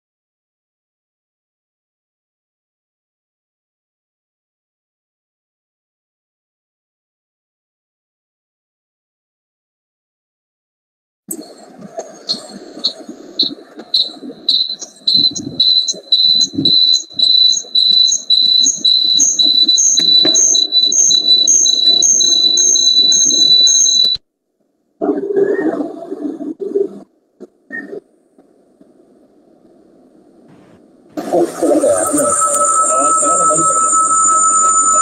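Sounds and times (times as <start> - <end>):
faint hum: 11.3 - 35.0
high-pitched electronic beeps: 12.3 - 24.2, 31.2 - 35.0.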